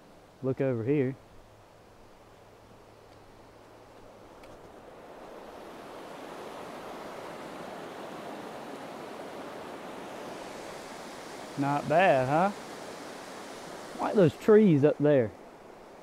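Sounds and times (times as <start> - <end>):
water rushing over rapids: 4.8 - 16.0.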